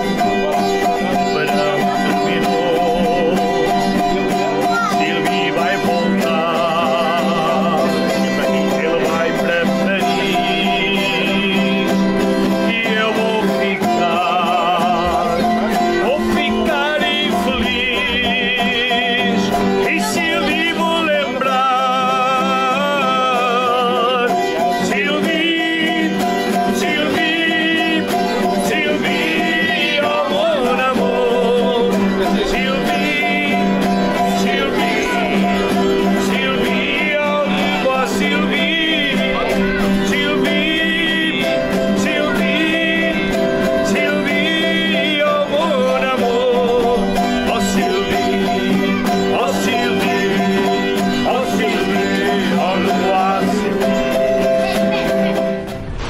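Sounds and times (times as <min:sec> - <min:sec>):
guitars strummed and plucked: 0:00.0 - 0:56.0
person singing with vibrato: 0:00.0 - 0:56.0.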